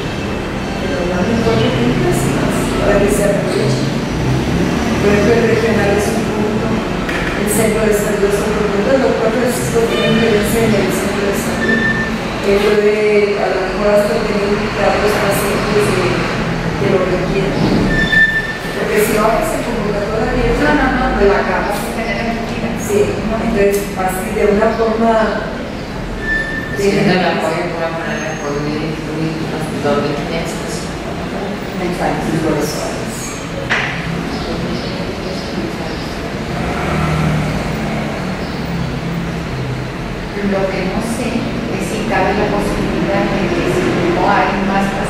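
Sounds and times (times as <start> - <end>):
people talking: 0.0 - 39.3, 40.0 - 45.0
road traffic rumble: 0.0 - 45.0
high-pitched squeal: 9.7 - 12.6, 17.7 - 19.0, 26.0 - 27.5.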